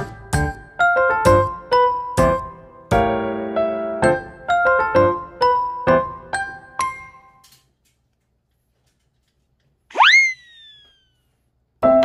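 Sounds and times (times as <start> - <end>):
cartoon boing sound effect: 10.0 - 11.0.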